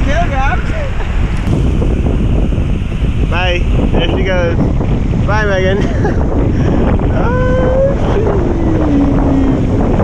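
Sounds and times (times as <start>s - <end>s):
wind rushing over microphone: 0.0s - 10.0s.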